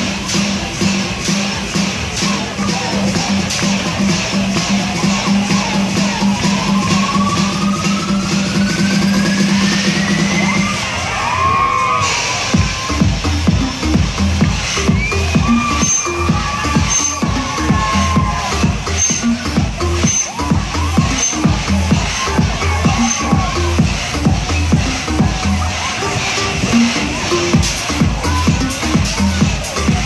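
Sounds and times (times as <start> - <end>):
electronic dance music: 0.0 - 30.0
rising pitch sweep: 4.9 - 11.0.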